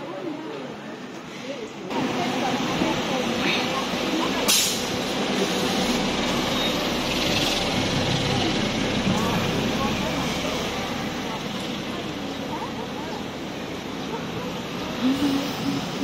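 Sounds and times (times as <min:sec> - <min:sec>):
street noise: 0:00.0 - 0:16.0
bus engine running: 0:01.9 - 0:16.0
air brakes hissing: 0:04.5 - 0:06.0
background voices: 0:07.6 - 0:16.0.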